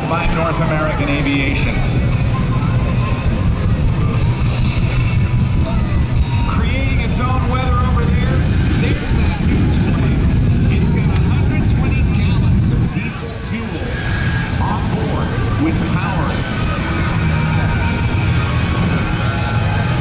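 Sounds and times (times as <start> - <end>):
jet engines roaring: 0.0 - 20.0.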